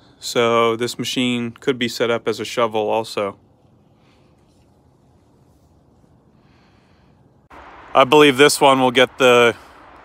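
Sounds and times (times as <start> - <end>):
soft hiss: 0.0 - 10.0
low rumble: 7.4 - 10.0.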